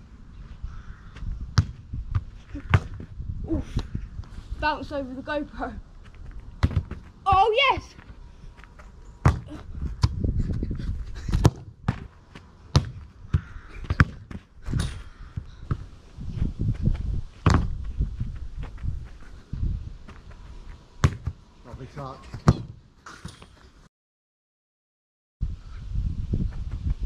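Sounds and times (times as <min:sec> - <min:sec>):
football thuds on grass: 0:01.5 - 0:03.1, 0:06.6 - 0:08.1, 0:09.2 - 0:10.6, 0:11.2 - 0:15.9, 0:16.7 - 0:19.1, 0:21.0 - 0:21.4, 0:22.3 - 0:23.5.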